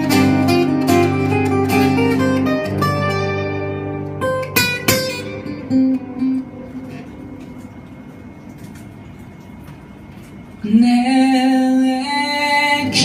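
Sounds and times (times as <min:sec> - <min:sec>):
acoustic guitars playing: 0:00.0 - 0:13.0.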